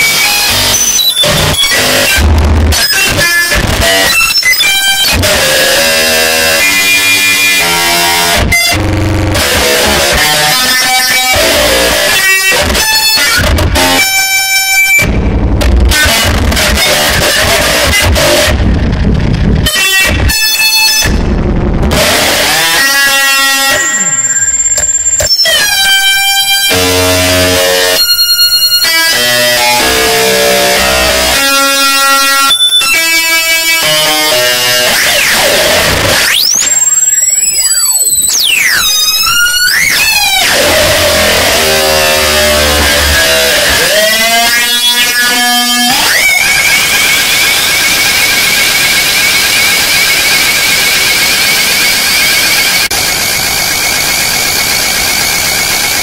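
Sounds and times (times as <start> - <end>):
harsh buzzing tones: 0.0 - 56.0
harsh noise music: 0.0 - 56.0
low hum: 18.0 - 20.3, 21.1 - 22.2
held electronic tones: 22.6 - 26.6.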